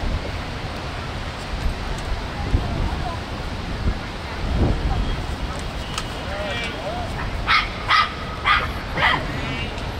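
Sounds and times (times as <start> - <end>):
small dog barking: 7.5 - 9.3.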